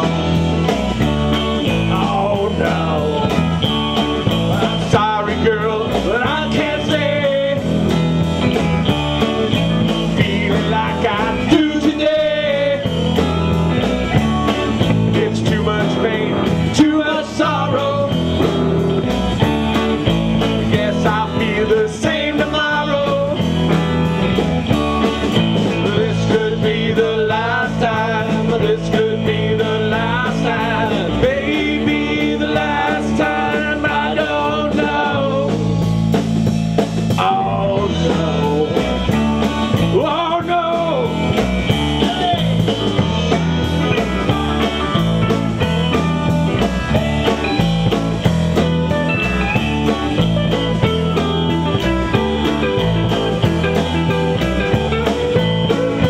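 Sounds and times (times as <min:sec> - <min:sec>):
blues band playing: 0:00.0 - 0:56.0.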